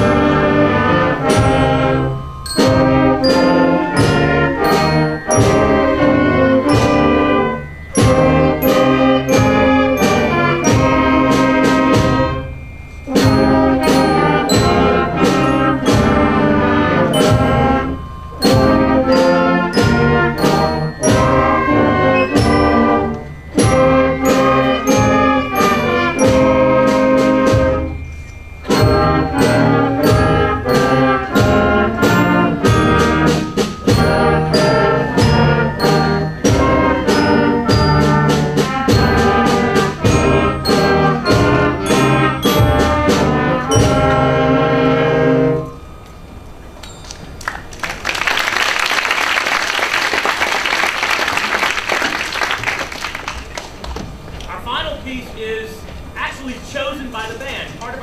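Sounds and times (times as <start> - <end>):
concert band playing minor chords: 0.0 - 48.3.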